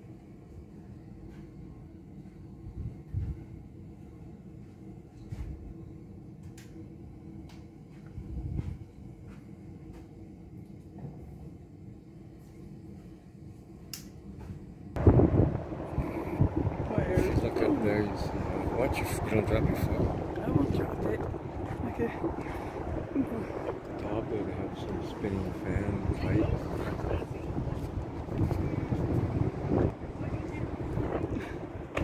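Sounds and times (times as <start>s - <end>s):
faint hum: 0.0s - 32.0s
steady low rumble: 0.0s - 32.0s
wind buffeting microphone: 2.6s - 3.6s, 8.1s - 9.0s, 15.0s - 32.0s.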